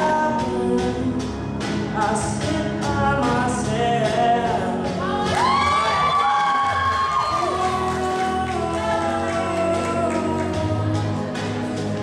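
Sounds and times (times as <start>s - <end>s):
man singing into a microphone: 0.0s - 11.4s
backing track: 0.0s - 12.0s.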